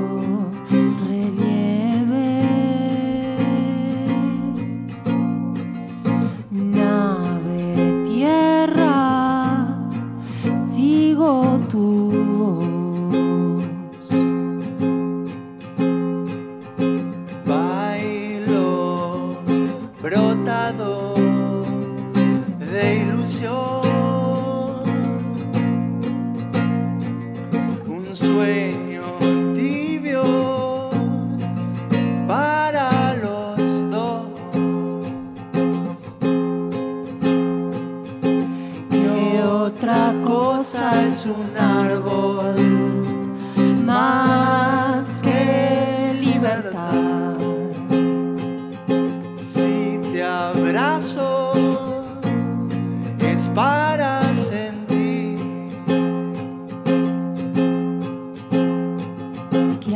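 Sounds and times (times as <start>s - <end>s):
man and woman singing: 0.0s - 5.1s, 6.2s - 14.2s, 17.4s - 25.0s, 27.8s - 31.4s, 32.3s - 35.4s, 38.6s - 48.2s, 49.4s - 52.3s, 53.2s - 55.9s
strummed acoustic guitar: 0.0s - 59.9s.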